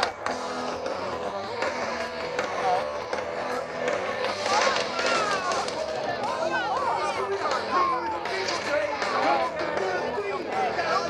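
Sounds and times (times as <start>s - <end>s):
crowd noise: 0.0s - 11.0s
heavy metal band through pa: 0.0s - 11.0s
nearby voices chattering: 0.0s - 11.0s.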